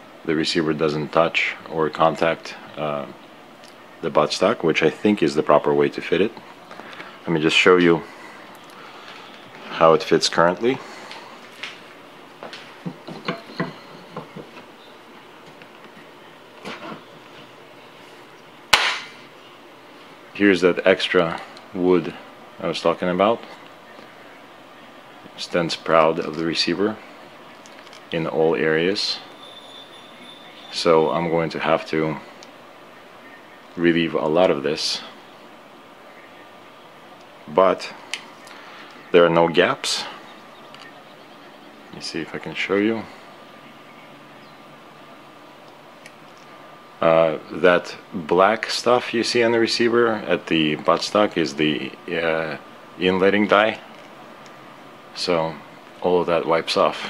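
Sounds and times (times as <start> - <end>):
faint hiss: 0.0 - 57.0.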